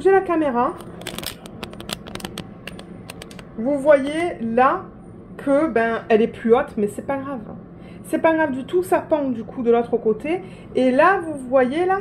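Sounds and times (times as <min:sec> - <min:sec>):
camera handling clicks and rustling: 0:00.8 - 0:03.5.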